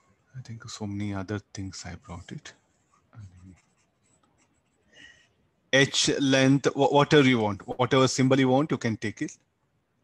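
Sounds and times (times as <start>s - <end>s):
stylus scratching and tapping on screen: 0.0s - 5.7s, 6.7s - 8.4s.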